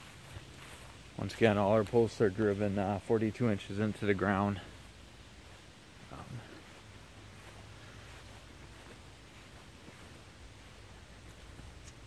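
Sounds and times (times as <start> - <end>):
faint rustle of noise: 0.0 - 12.0
steady low hum: 0.0 - 12.0.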